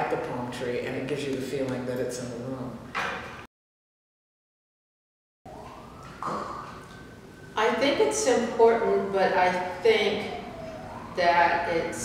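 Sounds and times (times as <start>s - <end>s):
siren wailing: 5.5s - 12.0s.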